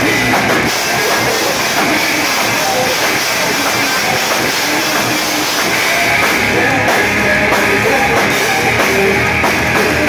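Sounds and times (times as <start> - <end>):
loud live rock band: 0.0 - 10.0.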